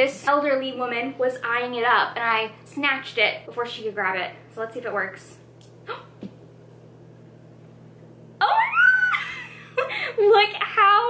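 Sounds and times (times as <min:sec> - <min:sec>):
woman squealing with delight: 0:08.4 - 0:09.6
woman laughing: 0:08.4 - 0:10.5.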